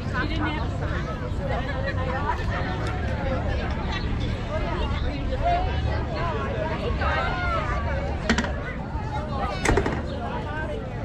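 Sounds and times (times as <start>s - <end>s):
people talking outdoors: 0.0s - 11.0s
sharp clicks or knocks: 8.3s - 8.6s.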